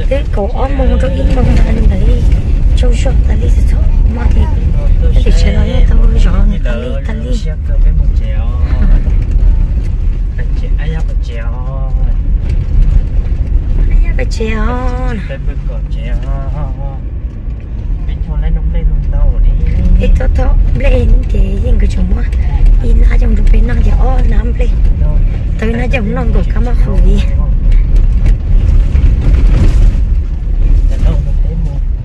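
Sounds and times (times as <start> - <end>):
voices: 0.0 - 9.1
engine and tyres rumbling: 0.0 - 32.0.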